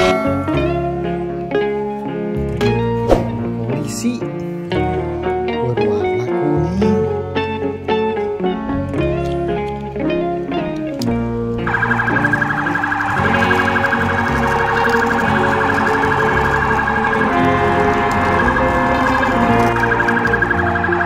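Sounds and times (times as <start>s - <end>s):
background music: 0.0s - 21.0s
electronic siren warbling: 11.6s - 21.0s.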